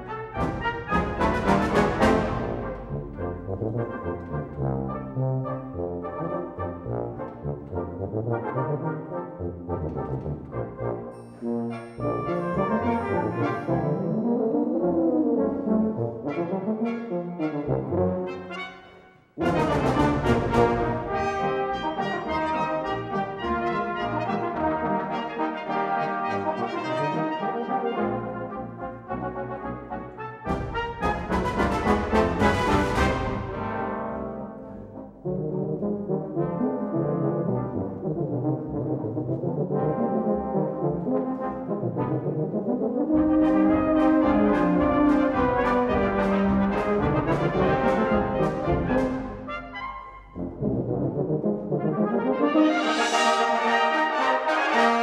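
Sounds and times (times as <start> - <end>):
brass band playing: 0.0 - 55.0.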